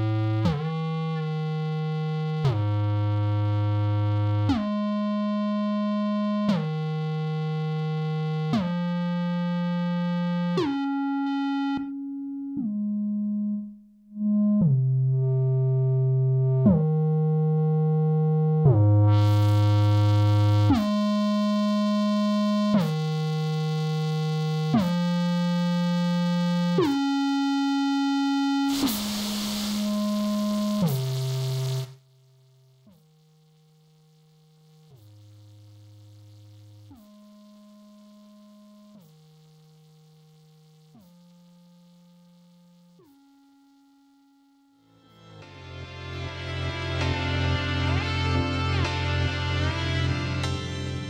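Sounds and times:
synthesizer held notes: 25.2s - 32.1s, 33.6s - 51.0s
hiss: 28.7s - 30.2s.

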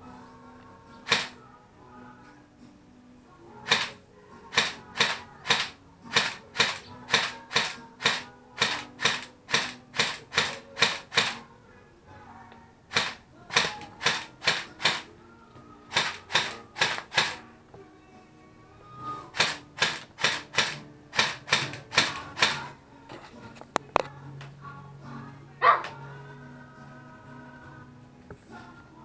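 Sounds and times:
airsoft rifle shots: 1.1s - 1.4s, 3.7s - 11.4s, 12.9s - 15.1s, 15.9s - 17.4s, 19.4s - 22.7s.

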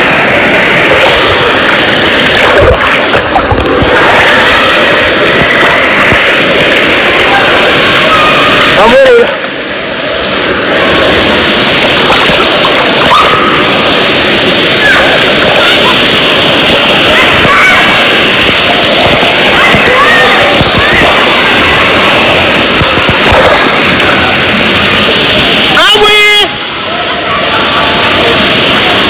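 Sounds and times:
water splashing and sloshing: 0.0s - 29.0s
voices in background: 14.7s - 29.0s.

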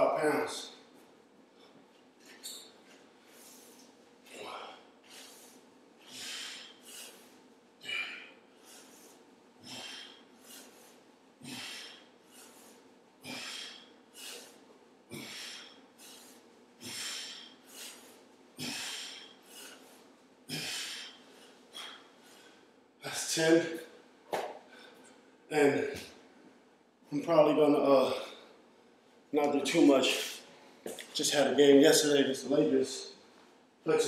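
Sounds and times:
man breathing hard: 3.2s - 22.8s.

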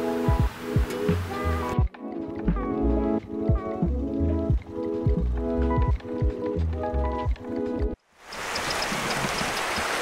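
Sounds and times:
river water rushing over stones: 8.2s - 10.0s.

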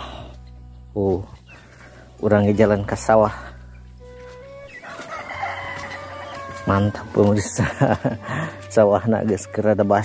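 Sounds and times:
rooster crowing: 4.8s - 7.4s.

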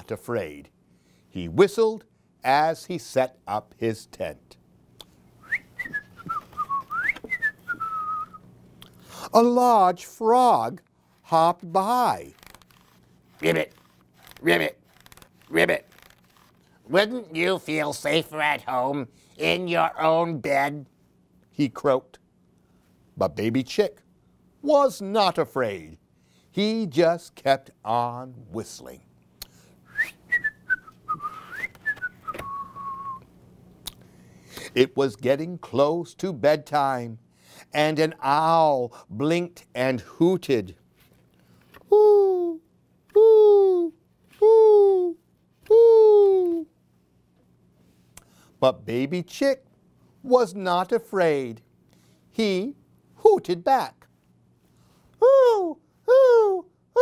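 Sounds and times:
man whistling a tune: 5.4s - 8.4s, 29.9s - 33.3s.

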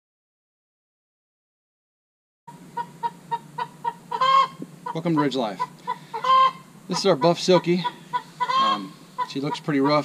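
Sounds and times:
hen clucking: 2.5s - 10.0s
hen drawn-out call: 2.8s - 10.0s.

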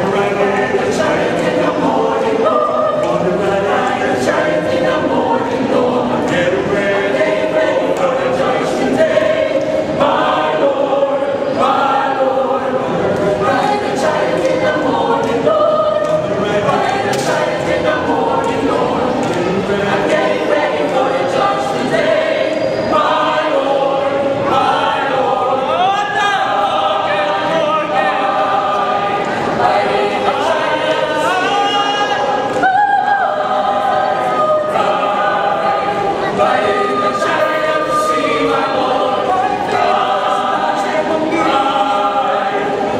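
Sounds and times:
mixed choir singing: 0.0s - 42.9s.

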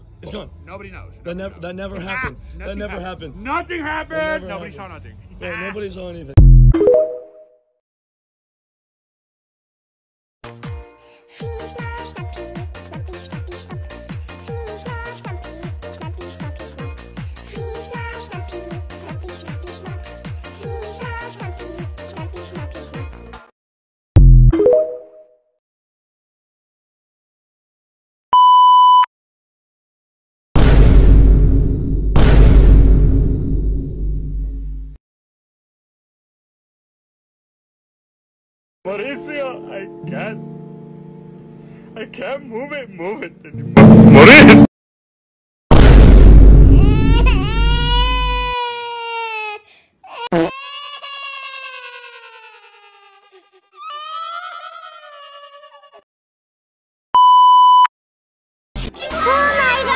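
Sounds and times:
electronic bleep: 6.4s - 7.5s, 24.2s - 25.2s
loud distorted rumble: 43.8s - 44.7s, 45.7s - 47.1s.

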